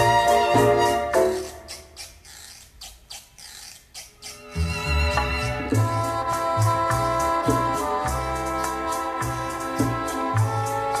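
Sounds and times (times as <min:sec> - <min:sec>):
soft shaker percussion: 0:00.0 - 0:11.0.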